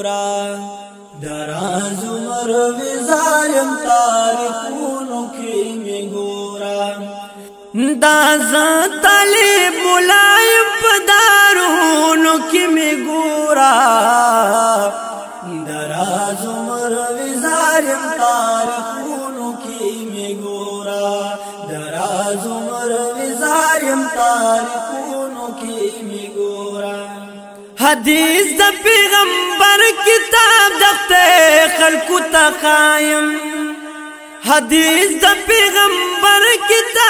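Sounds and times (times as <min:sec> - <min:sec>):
man singing: 0:00.0 - 0:37.0.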